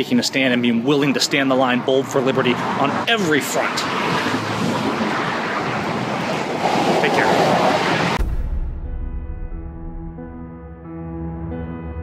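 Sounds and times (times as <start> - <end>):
rushing street noise: 0.0 - 8.2.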